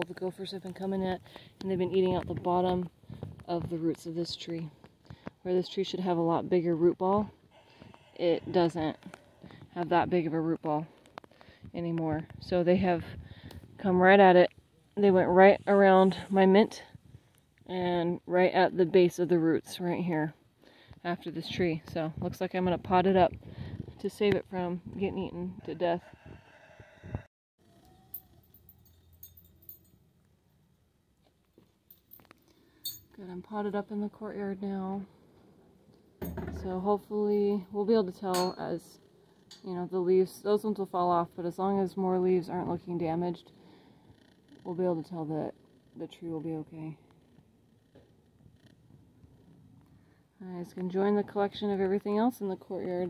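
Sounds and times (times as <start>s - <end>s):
faint background noise: 0.0s - 53.0s.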